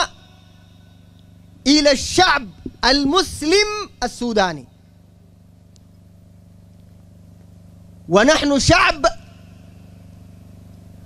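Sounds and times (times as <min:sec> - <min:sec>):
low mains hum: 0:00.0 - 0:11.0
man speaking: 0:01.6 - 0:04.7, 0:08.1 - 0:09.4.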